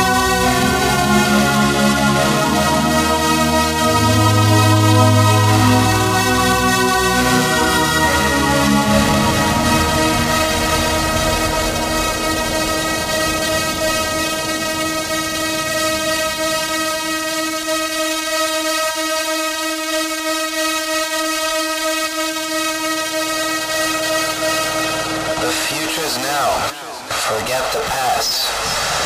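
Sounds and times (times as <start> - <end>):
horn-like synthesizer chord: 0.0 - 27.4
low electronic beat: 0.0 - 27.7
sweeping synth effect: 0.0 - 29.0.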